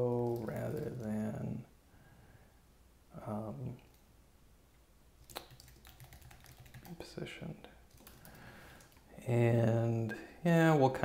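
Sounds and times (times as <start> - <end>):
typing on computer keyboard: 0.1 - 1.2, 5.2 - 7.0, 7.9 - 9.0.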